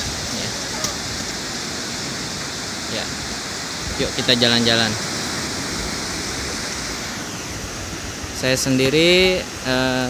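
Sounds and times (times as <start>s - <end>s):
waves breaking on beach: 0.0s - 10.0s.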